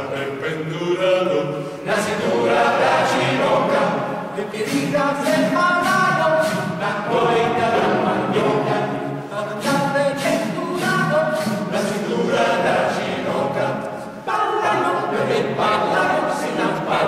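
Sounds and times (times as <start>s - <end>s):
choir singing a cappella: 0.0s - 17.0s.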